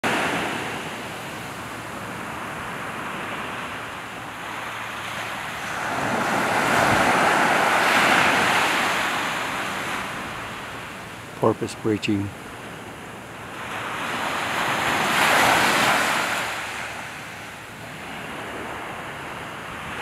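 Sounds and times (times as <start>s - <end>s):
small waves breaking on beach: 0.0s - 20.0s.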